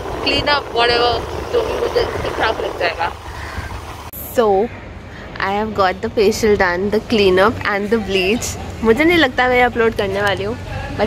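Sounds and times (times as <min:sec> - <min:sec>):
wind noise on microphone: 0:00.0 - 0:04.4
vehicle rumble: 0:00.0 - 0:11.0
women's voices: 0:00.2 - 0:03.2, 0:04.2 - 0:04.7, 0:05.3 - 0:10.6.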